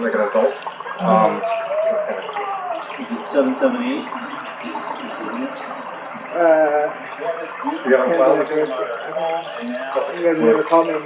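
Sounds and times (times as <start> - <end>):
faint murmur: 0.0 - 11.0.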